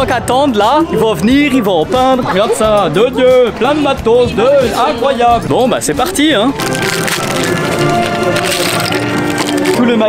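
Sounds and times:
plastic bag tearing and crinkling: 6.6s - 9.9s
plastic caps clattering on wood: 6.6s - 9.9s.

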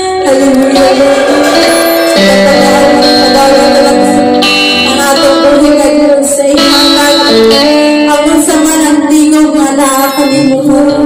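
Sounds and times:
electric guitar: 0.0s - 11.0s
woman singing into microphone: 0.0s - 11.0s.

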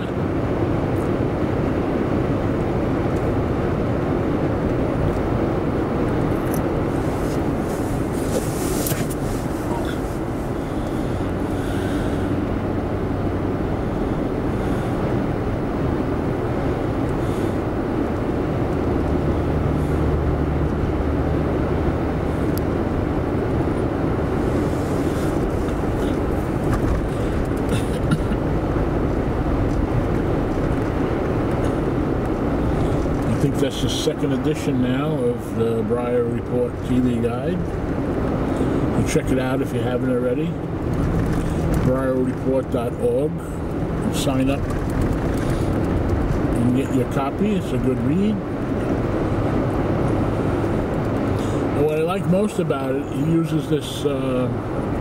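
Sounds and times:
car road and engine noise: 0.0s - 55.0s.

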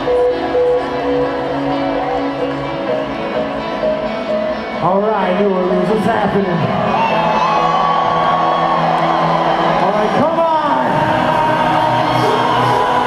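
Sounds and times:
electronic dance music: 0.0s - 13.0s
people whooping and cheering: 6.7s - 13.0s.

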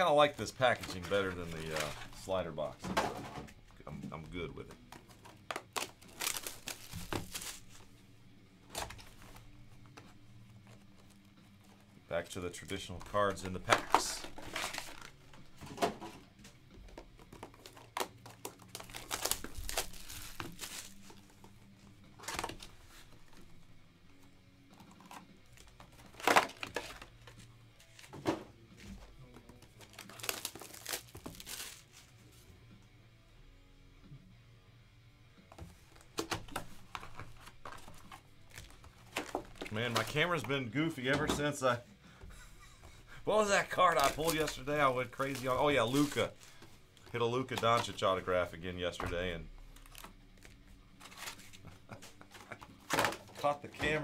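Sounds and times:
quiet background music: 0.0s - 54.0s
card packaging crinkling: 0.2s - 2.7s, 5.0s - 7.9s, 12.4s - 15.5s, 17.2s - 21.5s, 25.0s - 28.1s, 29.4s - 32.0s, 36.8s - 40.7s, 43.3s - 48.3s, 49.7s - 54.0s.

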